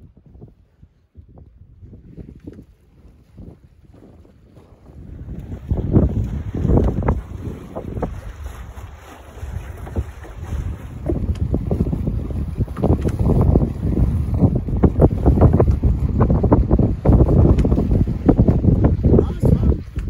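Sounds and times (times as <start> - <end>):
water splashing along hull: 0.0 - 20.0
wind buffeting microphone: 0.0 - 20.0.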